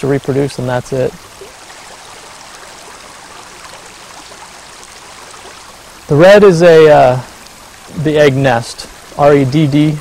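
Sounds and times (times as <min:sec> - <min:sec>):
creek water flowing: 0:00.0 - 0:10.0.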